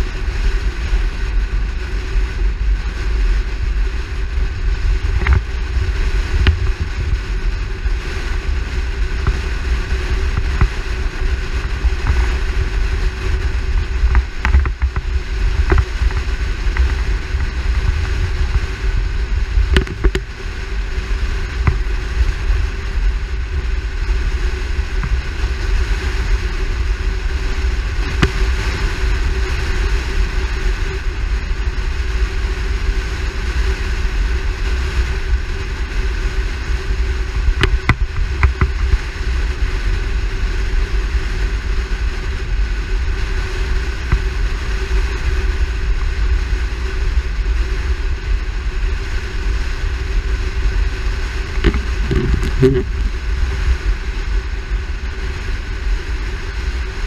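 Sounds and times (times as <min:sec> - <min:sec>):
car road and engine noise: 0:00.0 - 0:57.0
wind buffeting a camera: 0:00.0 - 0:57.0.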